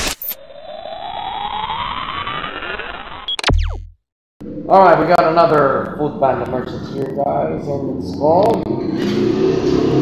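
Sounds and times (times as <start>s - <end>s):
rising electronic tone: 0.0s - 6.9s.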